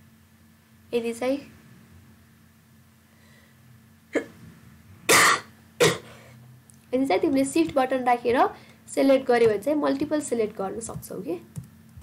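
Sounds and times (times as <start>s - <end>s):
woman coughing: 4.1s - 4.4s, 5.1s - 6.3s.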